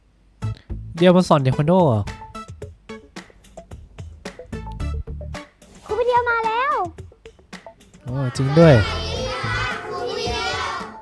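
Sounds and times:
children calling out in chorus: 0:08.0 - 0:11.0.

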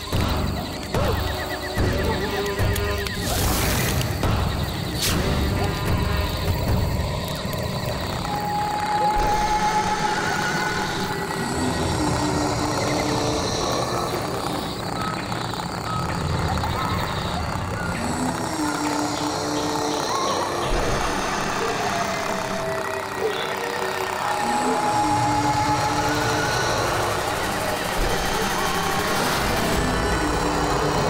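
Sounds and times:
low rumbling horror drone: 0:00.0 - 0:31.0.

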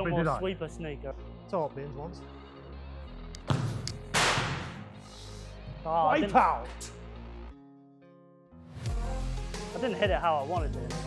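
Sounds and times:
background music: 0:00.0 - 0:11.0
football being struck: 0:03.4 - 0:04.8.

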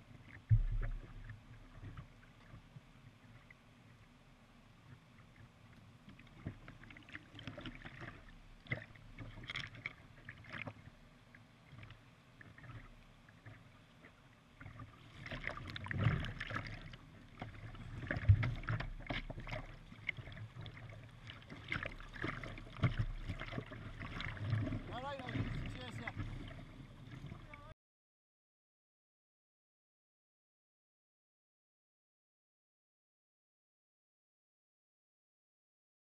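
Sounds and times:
water splashing against kayak: 0:04.8 - 0:27.7.

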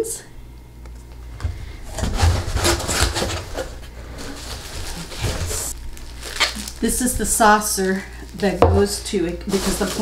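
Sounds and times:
cardboard scraping: 0:01.8 - 0:05.8
packing material rustling: 0:01.9 - 0:10.0.

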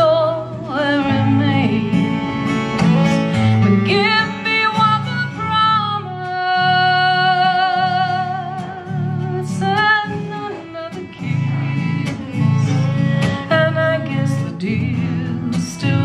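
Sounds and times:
bowed fiddle: 0:00.0 - 0:16.0
strummed guitar: 0:00.0 - 0:16.0
woman singing blues: 0:00.0 - 0:16.0.

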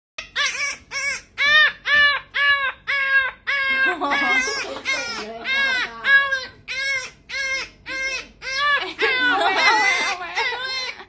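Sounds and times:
puppy screaming: 0:00.2 - 0:11.0.

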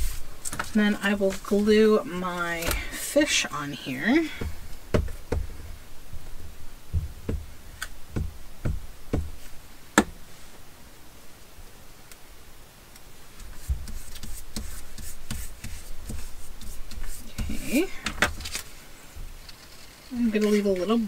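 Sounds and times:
paper rustling and rubbing: 0:00.0 - 0:01.6, 0:13.4 - 0:21.0.

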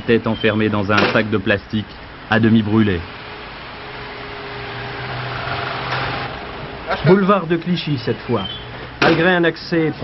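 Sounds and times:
street noise: 0:00.0 - 0:10.0
vehicle passing: 0:03.0 - 0:07.6.

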